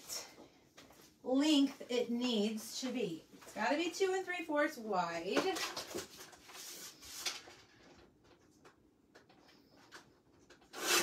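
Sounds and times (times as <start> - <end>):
paper sliding rustle: 5.6 - 7.9.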